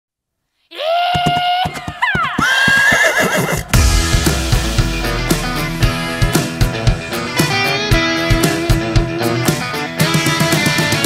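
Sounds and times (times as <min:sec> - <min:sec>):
horse whinnying: 0:00.9 - 0:03.8
galloping hooves thudding: 0:01.1 - 0:03.8
loud music with heavy bass: 0:03.7 - 0:08.3.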